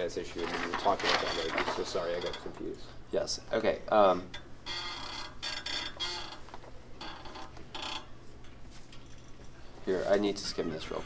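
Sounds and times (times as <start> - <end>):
paper pages rustling: 0.4 - 2.4.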